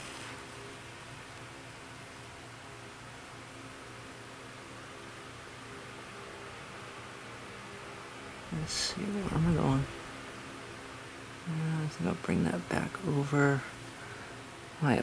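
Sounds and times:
faint low hum: 0.0s - 15.0s
steady hiss: 0.0s - 15.0s.

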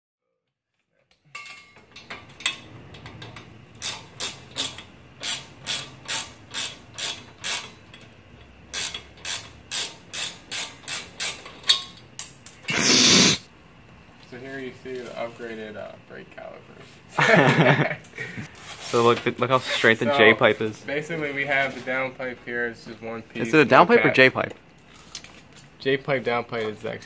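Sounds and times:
ratchet wrench clicking: 3.7s - 12.6s
loud rasping burst: 12.7s - 13.4s.

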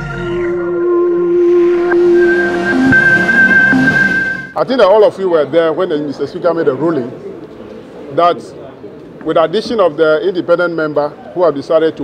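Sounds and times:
high steady tone: 0.0s - 4.6s
synthesized music: 0.0s - 4.6s
rising whoosh: 0.5s - 4.6s.

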